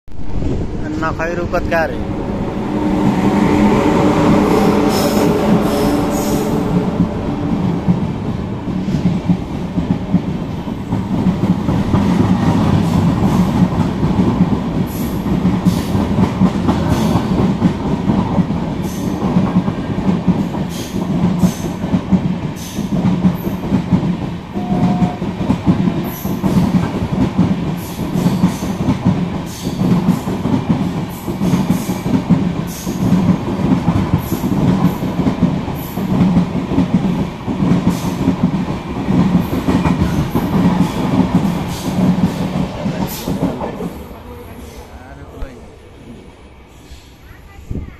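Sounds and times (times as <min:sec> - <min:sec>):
train coaches rumbling past: 0:00.1 - 0:47.9.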